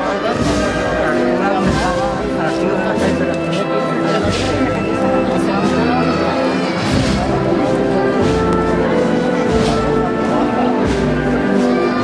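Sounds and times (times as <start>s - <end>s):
crowd chatter: 0.0s - 12.0s
procession band with brass: 0.0s - 12.0s.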